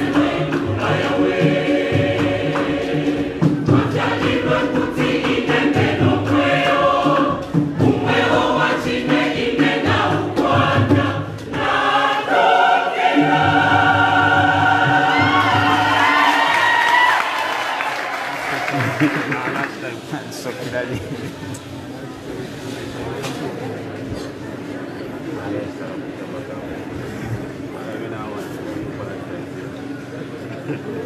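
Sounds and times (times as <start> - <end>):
beating drum: 0.0 - 17.1
choir singing in harmony: 0.0 - 18.1.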